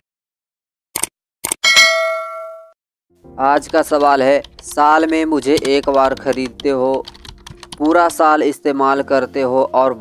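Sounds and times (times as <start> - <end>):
bright bell ding: 1.6 - 2.8.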